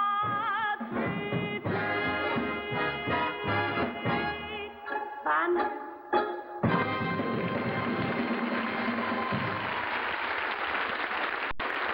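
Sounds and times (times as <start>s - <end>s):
audience applauding: 7.4s - 11.9s.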